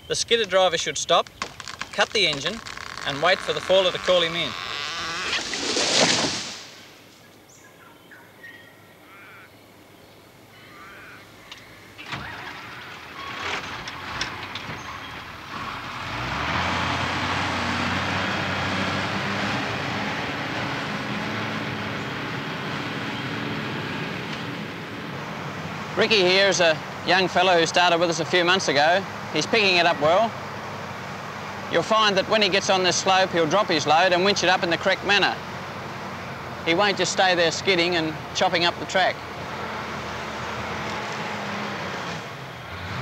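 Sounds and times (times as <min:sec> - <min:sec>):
diesel engine running: 0:11.8 - 0:43.0.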